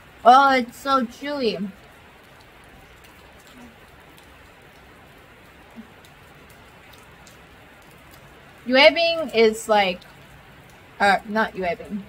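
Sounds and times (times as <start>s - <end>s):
rain on a metal roof: 0.0s - 12.0s.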